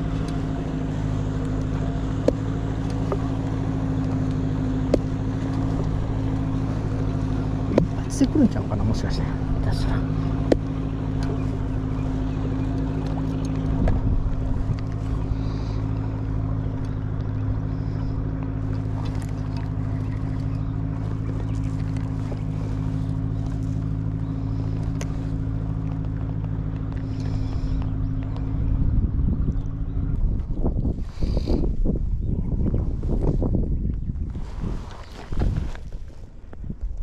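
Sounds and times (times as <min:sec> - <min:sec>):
boat engine droning: 0:00.0 - 0:37.0.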